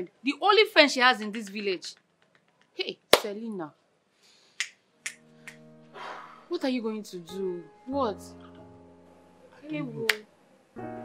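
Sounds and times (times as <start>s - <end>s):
film soundtrack music: 4.9s - 10.2s.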